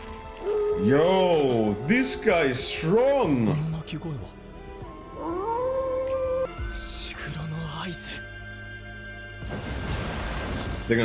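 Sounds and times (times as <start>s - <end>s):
dog howling: 0.4s - 3.6s, 5.1s - 6.5s.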